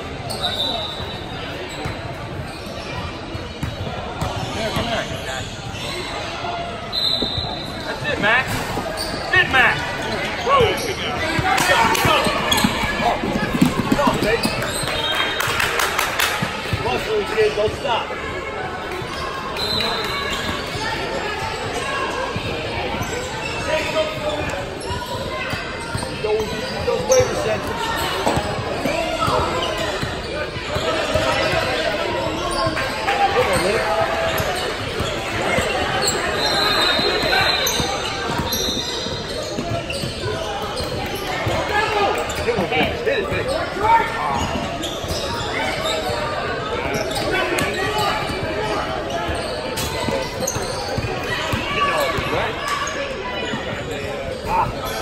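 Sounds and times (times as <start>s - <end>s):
voices of players and spectators: 0.0s - 55.0s.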